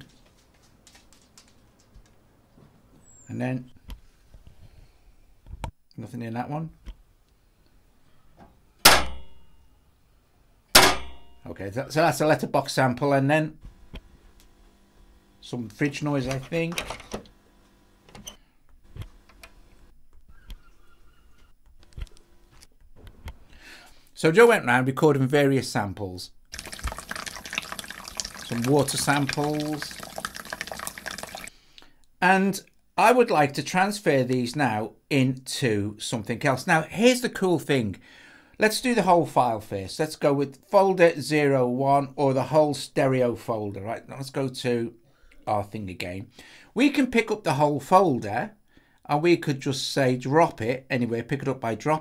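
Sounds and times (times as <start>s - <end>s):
running dripping water: 26.5s - 31.5s.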